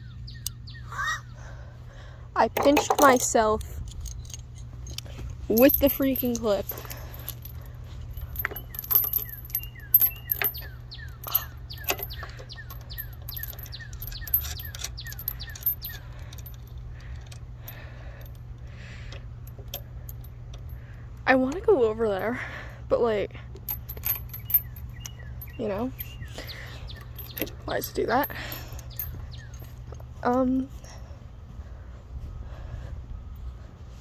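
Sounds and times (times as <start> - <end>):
swing chains clinking: 2.4 - 31.3.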